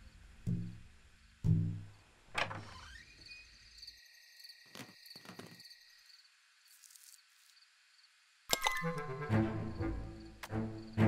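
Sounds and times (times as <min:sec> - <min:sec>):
crickets chirping: 0:00.0 - 0:01.4, 0:02.6 - 0:11.0.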